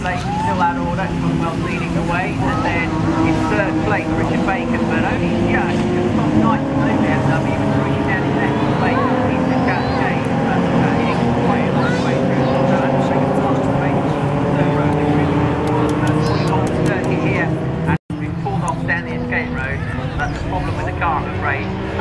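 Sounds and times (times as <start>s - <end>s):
race car engines: 0.0s - 22.0s.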